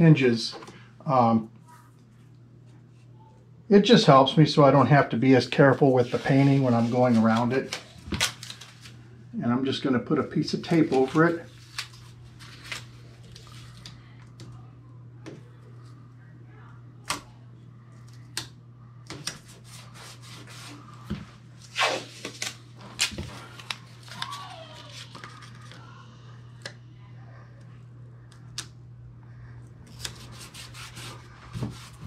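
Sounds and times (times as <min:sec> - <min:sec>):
steady low hum: 0:00.0 - 0:32.0
tape tearing: 0:21.6 - 0:25.6.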